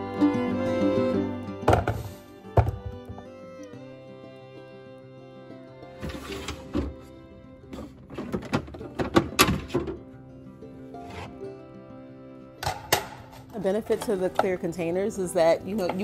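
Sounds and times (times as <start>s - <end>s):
background music with held tones: 0.0s - 16.0s
plastic bins knocking and clattering: 1.7s - 3.2s, 7.8s - 10.0s.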